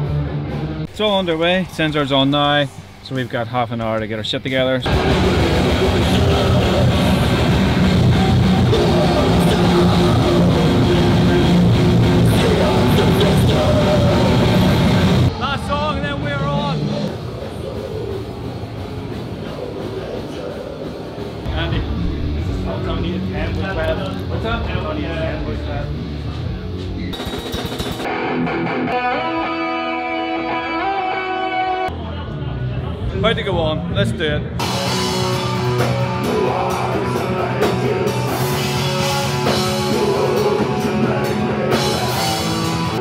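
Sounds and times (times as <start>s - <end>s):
heavy metal band playing: 0.0s - 3.7s, 4.8s - 31.9s, 34.0s - 43.0s.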